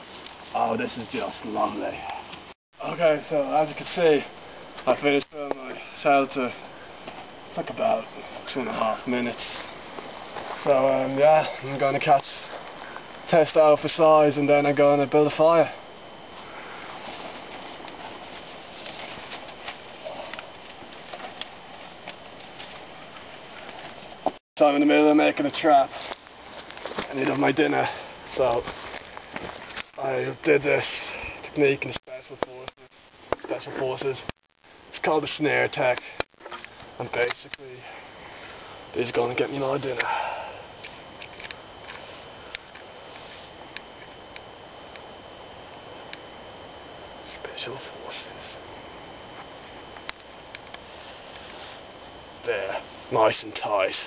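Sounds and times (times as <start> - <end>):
faint steady background hiss: 0.0 - 54.0
handling rustles: 9.7 - 13.3, 16.3 - 24.4, 25.8 - 30.0
twigs snapping and crackling: 25.9 - 27.5, 28.4 - 30.0.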